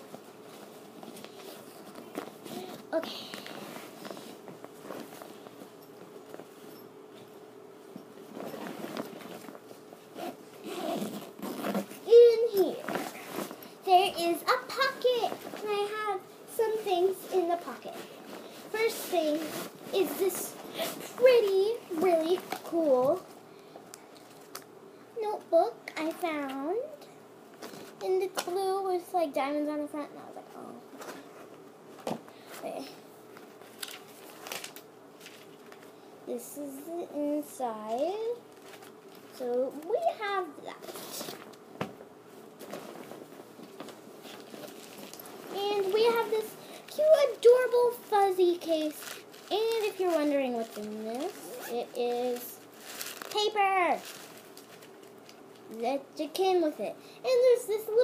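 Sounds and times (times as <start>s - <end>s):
backpack rustling: 0.0s - 13.8s, 16.6s - 22.8s, 42.4s - 55.4s
child making wordless sounds: 12.1s - 12.9s, 13.8s - 18.0s, 36.3s - 38.4s, 39.4s - 40.8s, 45.5s - 52.6s, 53.3s - 54.1s, 55.7s - 58.0s.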